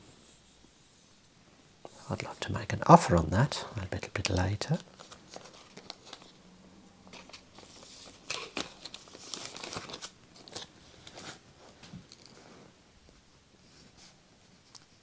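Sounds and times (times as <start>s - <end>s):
plastic sleeve crinkling: 3.5s - 6.4s, 7.1s - 11.4s.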